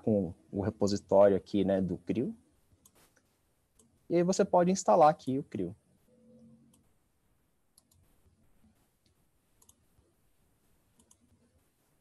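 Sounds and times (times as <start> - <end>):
computer mouse clicks: 7.7 - 8.3, 9.0 - 9.9, 11.0 - 11.4.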